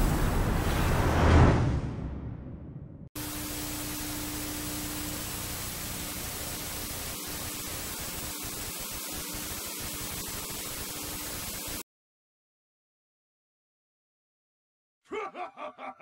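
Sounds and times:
tv static hiss: 0:03.2 - 0:11.8.

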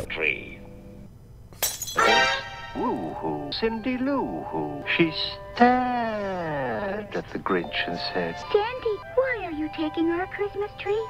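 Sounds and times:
glass breaking crash: 0:01.6 - 0:02.4
faint cartoon music: 0:01.9 - 0:11.0.

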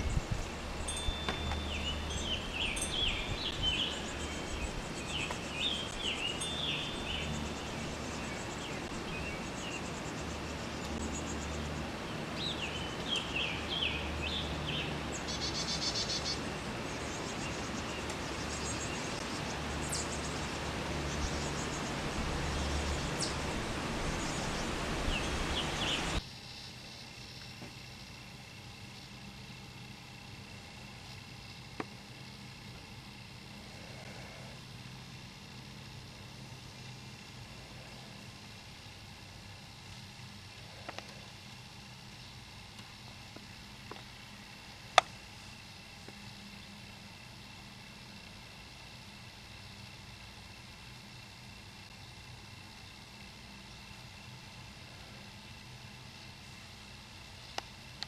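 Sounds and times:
small birds chirping: 0:00.0 - 0:26.2, 0:29.0 - 0:50.5, 0:51.1 - 0:58.0
steady outdoor hiss: 0:00.0 - 0:58.0.

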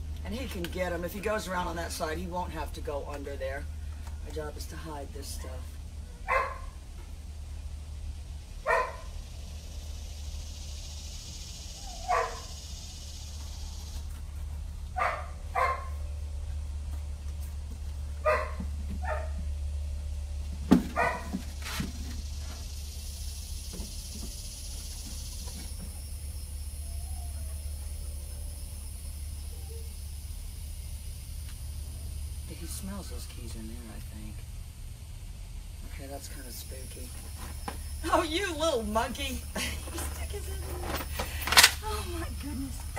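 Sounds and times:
steady low hum: 0:00.0 - 0:42.9
dog barking: 0:05.4 - 0:06.8, 0:08.6 - 0:09.1, 0:11.9 - 0:12.6, 0:15.0 - 0:16.0, 0:18.2 - 0:19.4, 0:21.0 - 0:21.3.

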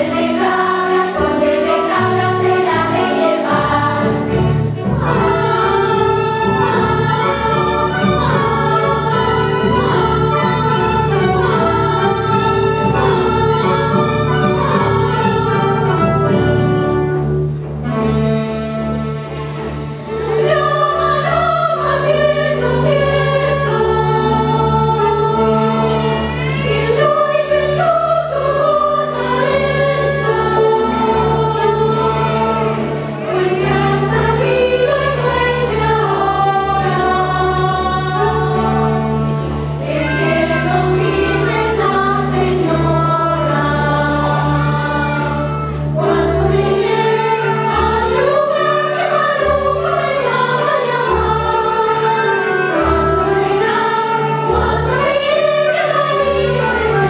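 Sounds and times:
mixed chorus singing: 0:00.0 - 0:17.3, 0:19.6 - 0:57.0
orchestral accompaniment: 0:00.0 - 0:57.0.

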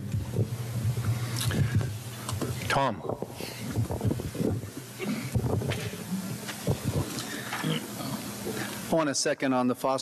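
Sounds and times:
hand bumping and scraping microphone: 0:00.0 - 0:07.3.

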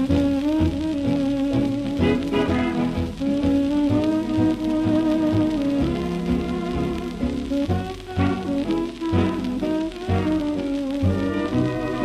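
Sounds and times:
record surface crackle: 0:00.0 - 0:12.0.

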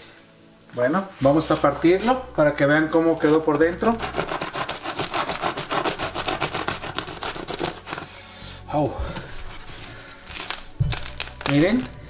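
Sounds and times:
bread knife sawing through crust: 0:03.7 - 0:08.2.

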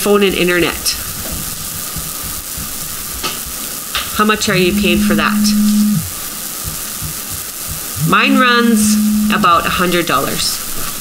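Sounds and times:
crackly line hiss: 0:00.0 - 0:11.0.

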